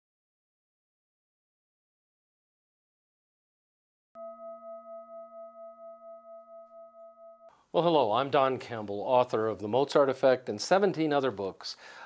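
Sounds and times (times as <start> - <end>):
struck metal tone ringing: 4.2 - 7.5.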